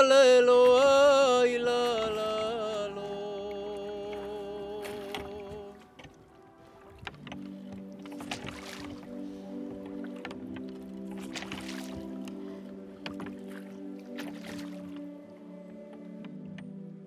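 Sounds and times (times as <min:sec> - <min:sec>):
held low musical chord: 0:00.0 - 0:17.0
water lapping against boat hull: 0:00.0 - 0:17.0.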